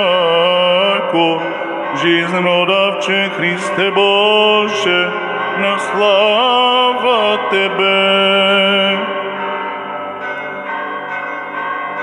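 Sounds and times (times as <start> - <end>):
electronic keyboard bell-like notes: 0.0 - 12.0.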